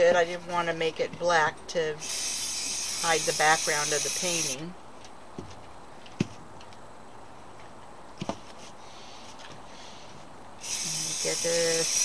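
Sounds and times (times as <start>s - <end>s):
aerosol spray can hissing: 10.6s - 12.0s.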